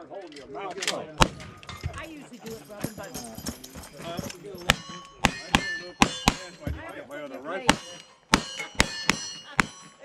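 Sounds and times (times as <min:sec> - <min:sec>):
gunshots: 0:01.2 - 0:01.9, 0:04.6 - 0:06.7, 0:07.6 - 0:10.0
metallic ringing of steel targets: 0:02.6 - 0:06.8, 0:07.6 - 0:10.0.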